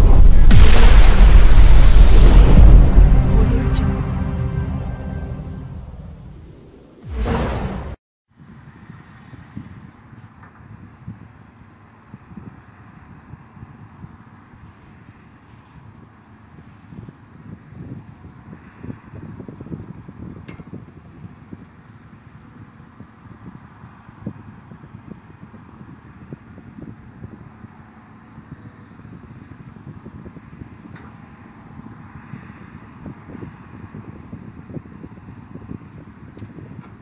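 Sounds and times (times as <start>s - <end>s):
wind buffeting microphone: 0.0s - 2.4s.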